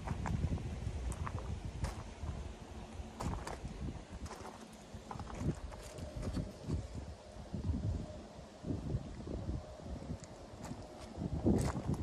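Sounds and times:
footsteps on gravel: 1.1s - 2.4s, 3.2s - 6.9s, 10.6s - 12.0s.

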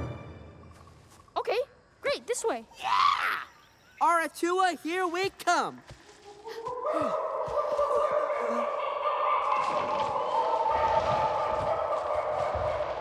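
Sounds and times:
chorus of wailing cries: 6.3s - 13.0s.

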